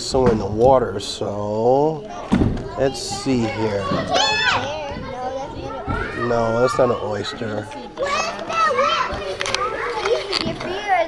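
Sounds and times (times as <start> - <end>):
children chattering while playing: 0.0 - 11.0
children's gliding voices: 1.0 - 11.0.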